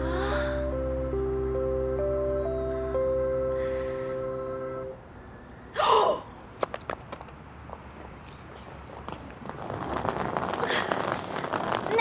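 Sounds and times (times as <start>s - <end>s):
soft background music: 0.0s - 5.0s.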